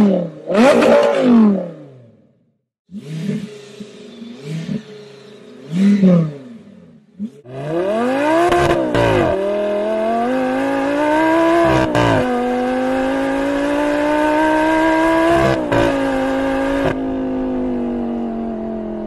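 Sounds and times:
sports car accelerating: 0.0 - 2.2, 2.9 - 19.0.

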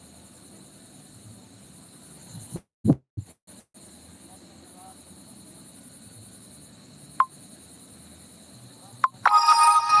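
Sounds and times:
electronic chime ringtone: 9.2 - 10.0.

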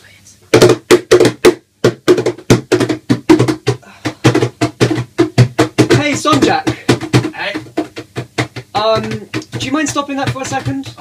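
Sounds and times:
hands slapping guitar body: 0.6 - 11.0.

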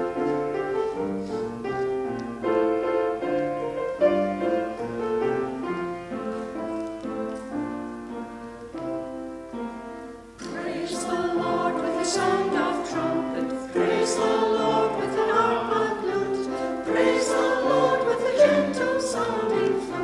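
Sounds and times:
keyboard accompaniment: 0.0 - 20.0
choir singing: 10.4 - 20.0.

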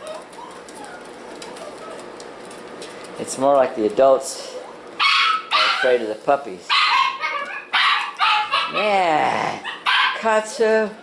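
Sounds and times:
dogs whimpering softly: 0.0 - 2.5.

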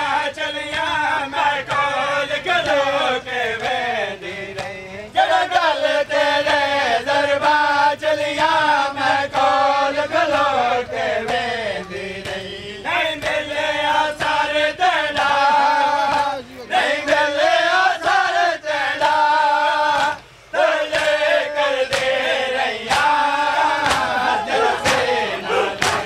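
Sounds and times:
men chanting a lament: 0.0 - 26.0
rhythmic chest-beating slaps: 0.0 - 26.0.

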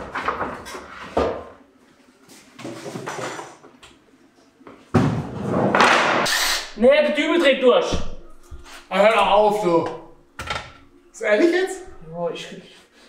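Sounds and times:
power drill driving a screw: 6.3 - 6.8.

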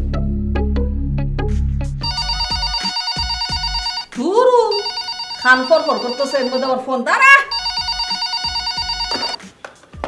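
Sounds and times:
desk telephone ringing: 2.0 - 9.4.

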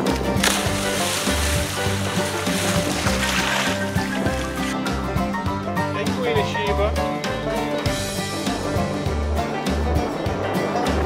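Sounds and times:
plucked strings: 0.0 - 11.0
sliding melody line: 0.4 - 5.4.

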